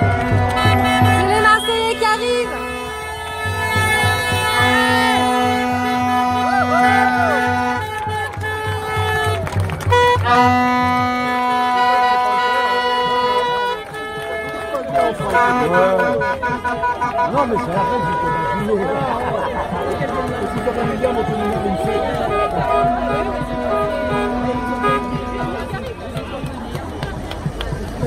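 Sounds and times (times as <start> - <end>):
car horns blasting: 0.0 - 19.0, 20.2 - 26.4
crowd shouting and cheering: 0.0 - 28.0.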